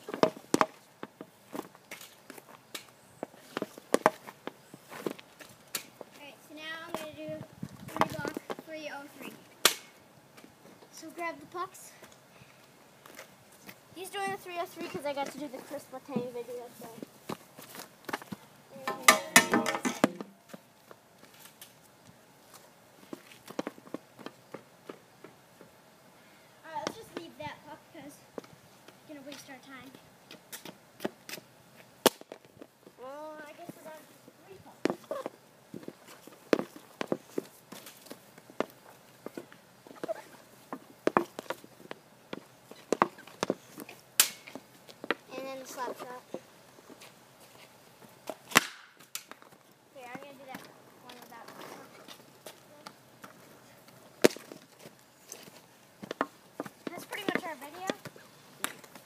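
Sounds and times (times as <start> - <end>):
hockey sticks striking pucks: 18.9 - 20.3, 44.2 - 44.6, 48.5 - 49.4, 56.1 - 59.0
pucks hitting the goal: 18.9 - 20.3.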